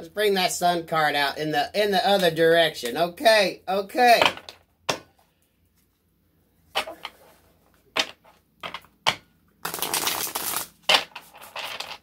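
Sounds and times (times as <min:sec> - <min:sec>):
cards shuffled by hand: 0:09.6 - 0:12.0.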